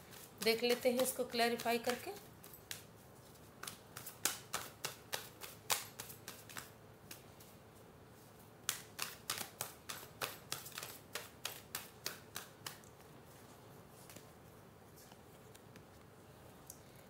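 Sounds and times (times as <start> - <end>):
cards being shuffled by hand: 0.0 - 7.6, 8.2 - 16.2.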